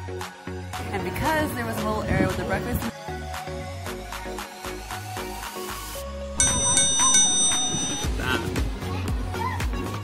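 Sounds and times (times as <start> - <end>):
bright bell ding: 6.4 - 8.1.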